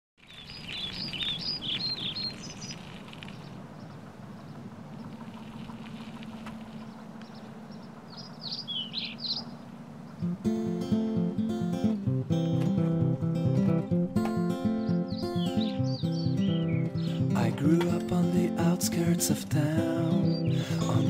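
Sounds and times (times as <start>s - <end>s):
birds chirping and singing: 0.2s - 11.2s, 14.2s - 21.0s
low outdoor hum: 0.5s - 21.0s.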